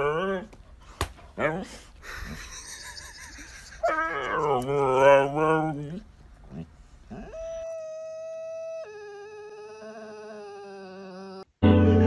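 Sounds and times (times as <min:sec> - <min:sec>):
dog howling: 0:07.2 - 0:11.5.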